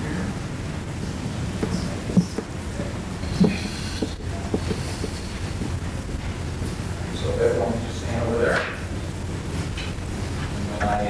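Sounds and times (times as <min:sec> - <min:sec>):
low room hum: 0:00.0 - 0:11.0
faint knocks: 0:03.2 - 0:06.4.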